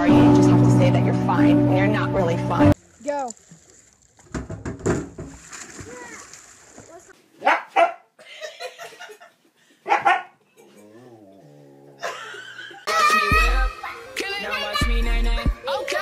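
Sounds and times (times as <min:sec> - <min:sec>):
husky barking: 0:07.4 - 0:08.1, 0:09.8 - 0:10.4.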